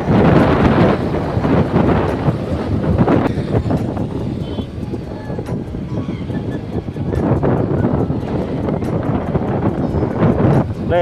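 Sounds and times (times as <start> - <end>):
road and traffic rumble: 0.0 - 11.0
wind buffeting microphone: 0.0 - 11.0.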